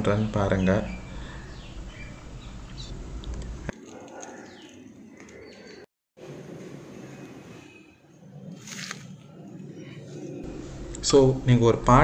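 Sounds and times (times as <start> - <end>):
bird calls and chirps: 0.5 - 3.0, 3.8 - 5.9.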